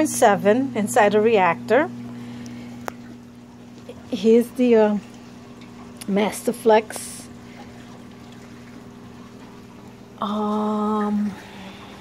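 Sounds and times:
pumps humming: 0.0 - 12.0
water trickling and flowing: 0.0 - 12.0.

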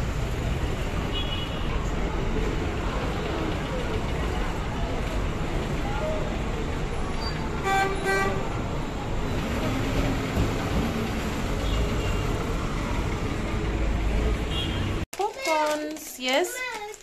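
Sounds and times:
low rumble of engines: 0.0 - 15.0
chatter of passers-by: 0.0 - 17.0
vehicle horn toots: 7.6 - 8.5, 14.5 - 15.0.

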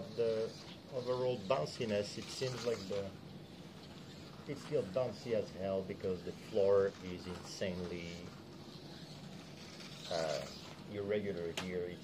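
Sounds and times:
electric toy car whirring: 0.0 - 12.0.

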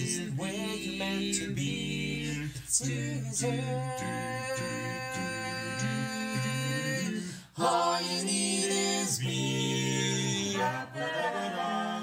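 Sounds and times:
vocal group singing harmony: 0.0 - 12.0.

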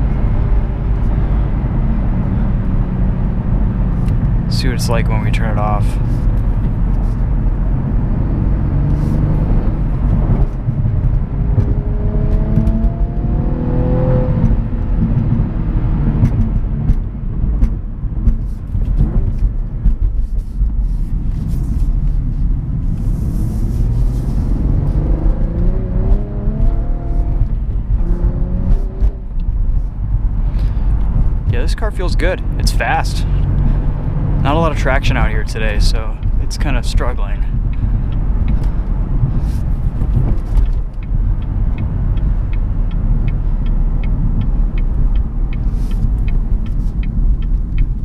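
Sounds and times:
car engine revving: 0.0 - 20.4, 21.0 - 48.0
road and tyre rumble: 0.0 - 48.0.

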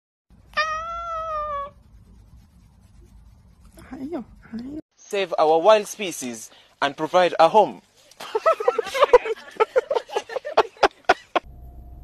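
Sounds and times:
cat meowing: 0.5 - 1.8.

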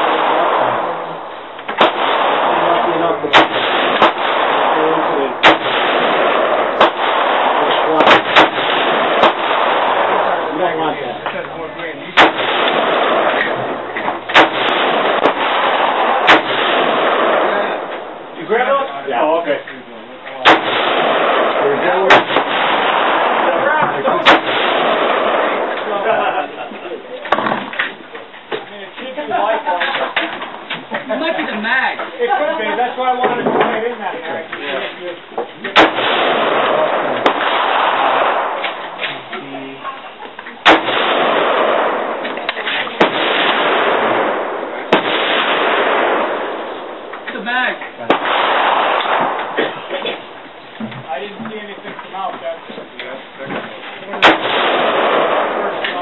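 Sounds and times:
rifle shots: 0.0 - 19.5, 20.4 - 26.5, 35.6 - 39.9, 40.6 - 50.8, 53.7 - 56.0.

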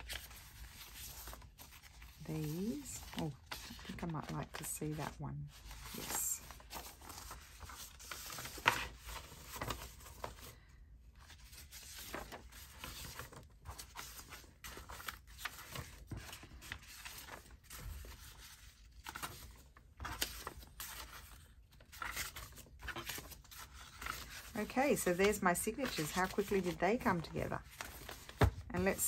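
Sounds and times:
paper and card rustling: 0.0 - 29.0.

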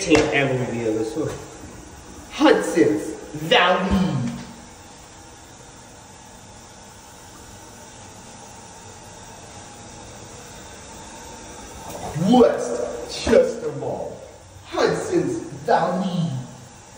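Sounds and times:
water running in toilet: 0.0 - 16.9.

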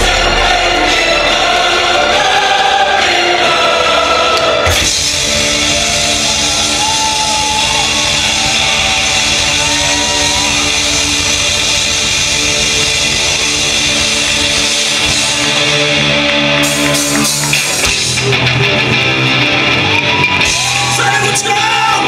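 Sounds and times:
distorted electric guitars: 0.0 - 22.0
drums: 0.0 - 22.0.

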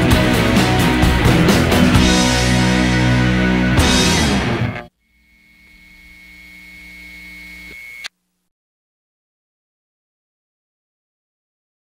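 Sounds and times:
low hum: 4.3 - 8.1
faint high whine: 4.8 - 8.4.

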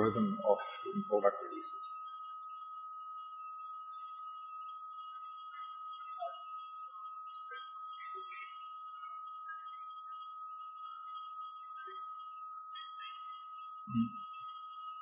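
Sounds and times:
steady high-pitched whine: 0.0 - 15.0.

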